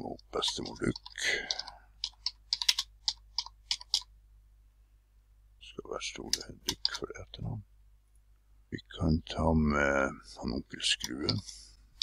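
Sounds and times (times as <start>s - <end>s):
typing on a keyboard: 0.4s - 4.1s.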